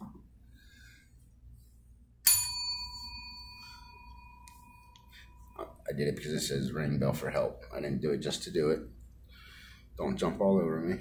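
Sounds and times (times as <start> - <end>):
desk bell ding: 2.2 - 5.8.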